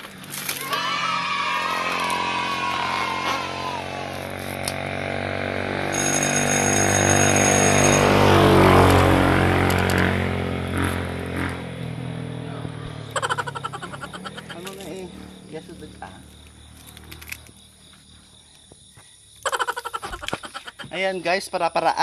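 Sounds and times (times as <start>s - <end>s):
vehicle passing: 0.0s - 18.5s.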